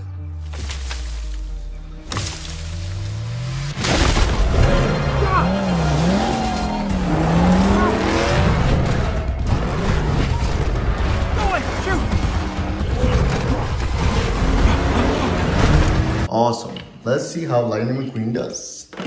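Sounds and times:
soundtrack music: 0:00.0 - 0:16.3
tires skidding: 0:03.1 - 0:16.3.

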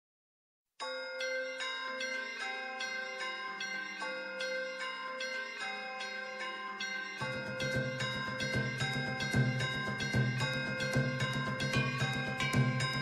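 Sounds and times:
ringing bell tones: 0:00.8 - 0:13.0.

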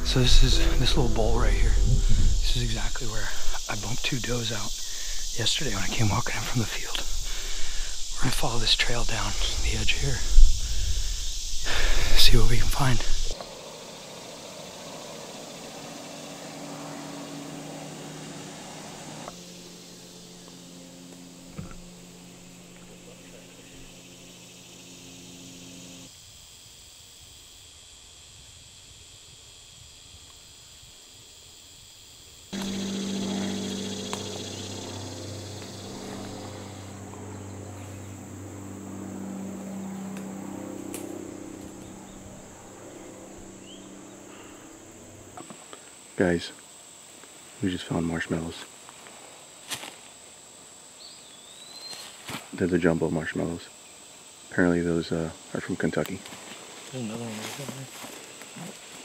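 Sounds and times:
low hum: 0:00.0 - 0:26.1, 0:32.6 - 0:45.9
high drone of insects: 0:00.0 - 0:59.0.

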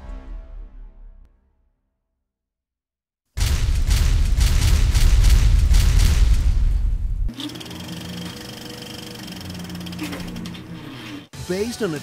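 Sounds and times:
boom: 0:03.4 - 0:07.3
whirring buzz with rattle: 0:07.3 - 0:11.2.

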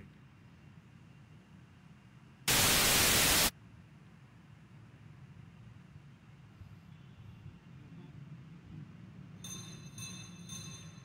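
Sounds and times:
loud electronic static burst: 0:02.5 - 0:03.5.

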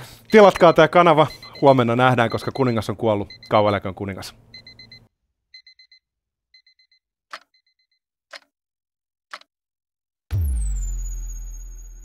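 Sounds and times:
digital alarm clock beeping: 0:00.3 - 0:03.9, 0:04.5 - 0:06.0, 0:06.6 - 0:08.0.

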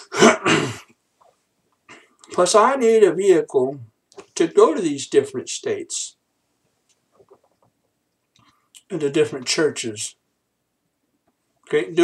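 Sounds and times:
man clearing his throat: 0:00.0 - 0:01.0.

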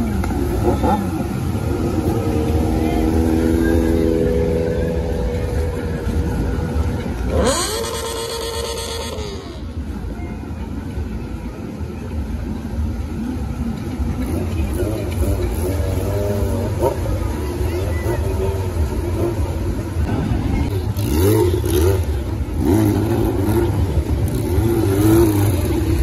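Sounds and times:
motorcycle engine revving: 0:00.0 - 0:09.9, 0:13.2 - 0:26.0
crowd noise: 0:00.0 - 0:26.0
motorcycle engines running: 0:00.0 - 0:26.0.

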